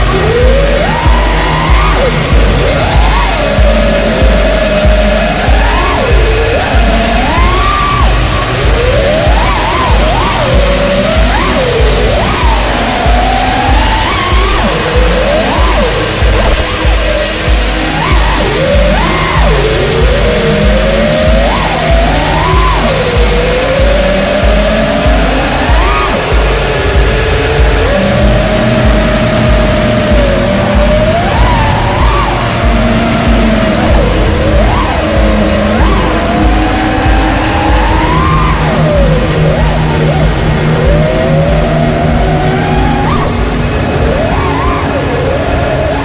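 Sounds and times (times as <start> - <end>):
background music with steady beat: 0.0 - 46.0
drone motors whining: 0.0 - 46.0.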